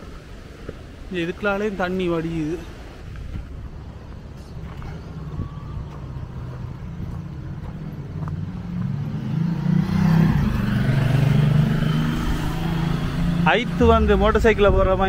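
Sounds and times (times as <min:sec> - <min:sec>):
motorcycle engine approaching: 0:04.7 - 0:14.8.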